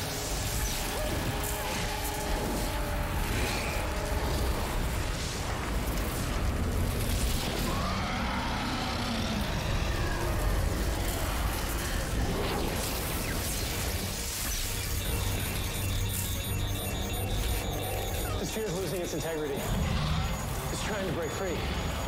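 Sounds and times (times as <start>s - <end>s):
dramatic film score: 0.0s - 22.0s.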